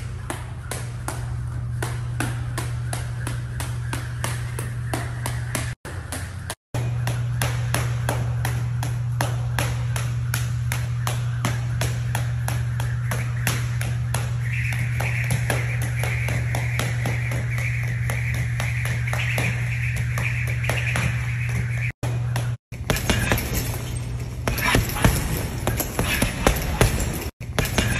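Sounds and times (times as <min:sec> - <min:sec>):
jump rope slapping mat: 0:00.0 - 0:23.8
steady low hum: 0:00.0 - 0:27.9.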